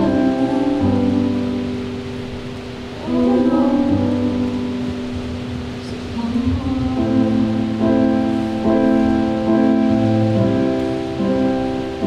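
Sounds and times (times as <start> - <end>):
electric piano chords: 0.0 - 12.0.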